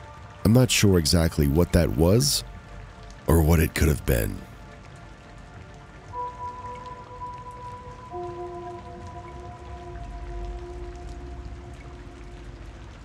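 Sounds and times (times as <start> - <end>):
rain-like patter: 0.0 - 13.0
slow ambient music: 0.0 - 13.0.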